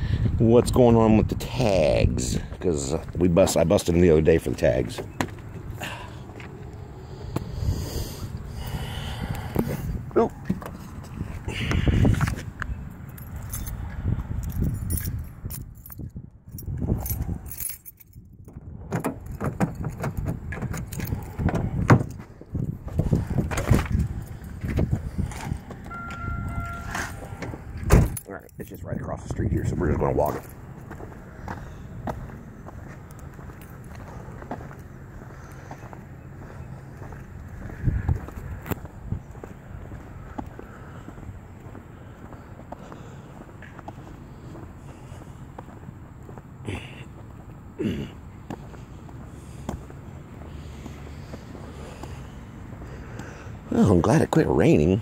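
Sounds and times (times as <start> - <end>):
footsteps outdoors: 0.3 - 55.0
keys jangling: 12.9 - 18.5, 19.1 - 21.4, 28.0 - 28.8
short beep: 25.9 - 27.4.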